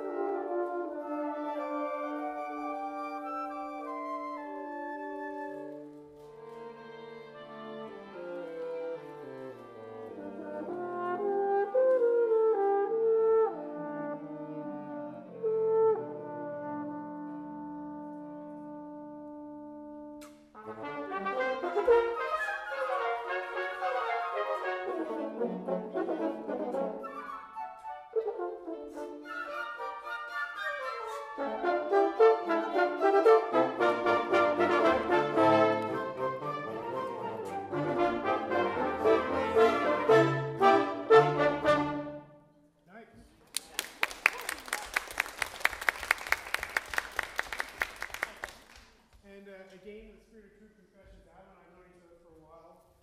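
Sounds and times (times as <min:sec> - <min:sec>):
wind ensemble playing: 0:00.0 - 0:42.6.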